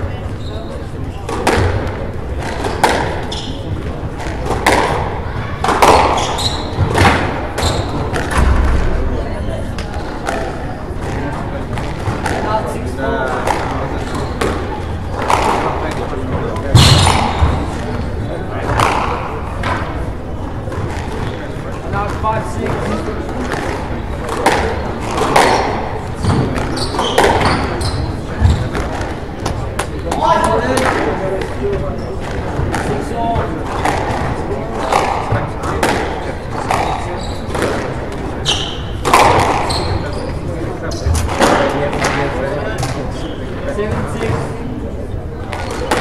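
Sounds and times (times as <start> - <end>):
squash ball cracks: 1.3 - 3.2, 4.2 - 7.4, 16.7 - 17.9, 39.0 - 39.7, 45.5 - 46.0.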